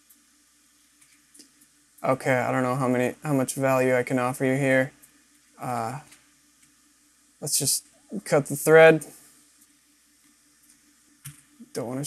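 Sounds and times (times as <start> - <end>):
faint room hiss: 0.0 - 12.0
man's voice: 2.0 - 4.9, 5.6 - 6.0, 7.4 - 9.1, 11.6 - 12.0.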